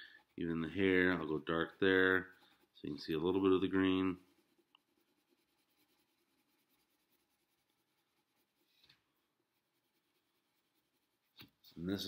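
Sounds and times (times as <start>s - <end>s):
pencil scratching on paper: 0.0s - 11.8s.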